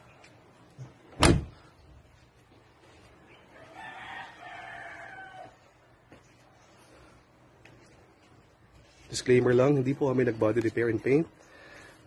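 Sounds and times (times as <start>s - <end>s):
faint rooster crowing: 3.4s - 6.0s.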